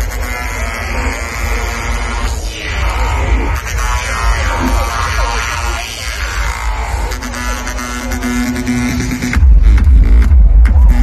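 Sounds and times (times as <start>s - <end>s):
heavy bass: 0.0s - 11.0s.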